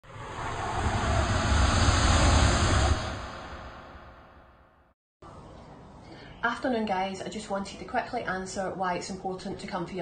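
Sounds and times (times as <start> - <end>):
logo whoosh with deep rumble: 0.0 - 5.0.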